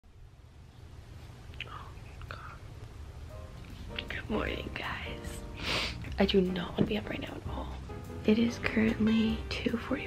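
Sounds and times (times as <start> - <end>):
low steady hum: 0.0 - 10.0
woman whispering: 1.6 - 2.7, 4.0 - 5.4.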